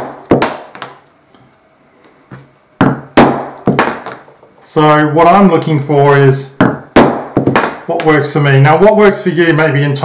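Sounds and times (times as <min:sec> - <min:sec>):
mallet striking hole punch: 0:02.8 - 0:04.2, 0:06.6 - 0:07.8.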